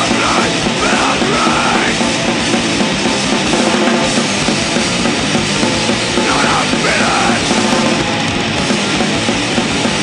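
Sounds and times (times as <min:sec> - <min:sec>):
shouted vocals: 0:00.0 - 0:02.0, 0:06.2 - 0:07.5
distorted guitars and drums: 0:00.0 - 0:10.0.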